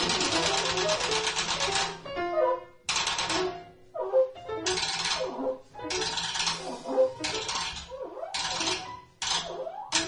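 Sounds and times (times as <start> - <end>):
rapid drumstick rattle: 0.0 - 2.0, 4.7 - 5.2, 5.9 - 9.4.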